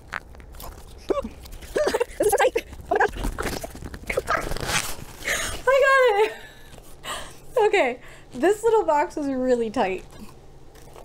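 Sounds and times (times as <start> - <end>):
cardboard scraping and rubbing: 2.9 - 5.2.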